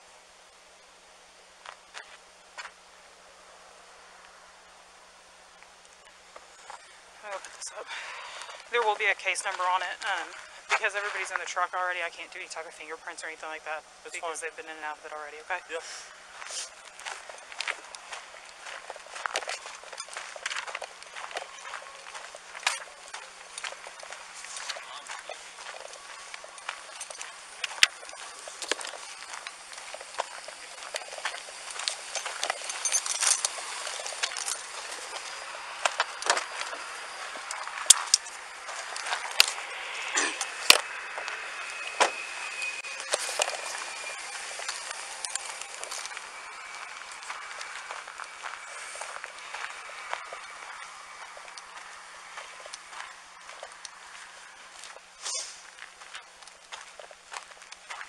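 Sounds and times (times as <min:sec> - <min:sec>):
footsteps on dirt and gravel: 0:01.6 - 0:02.8, 0:05.5 - 0:58.0
gear clicking and knocking: 0:22.2 - 0:49.2.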